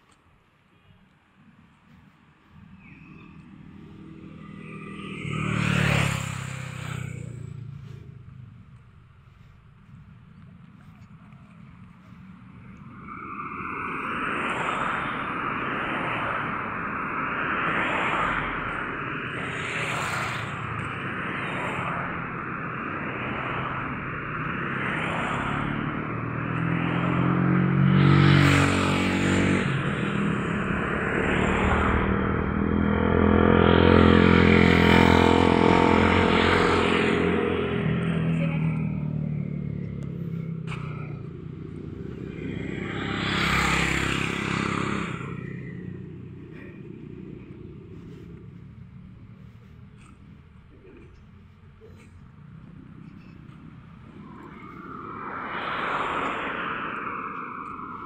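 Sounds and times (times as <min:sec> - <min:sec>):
cars driving by: 0:00.0 - 0:58.0
motorcycles passing: 0:00.7 - 0:58.0.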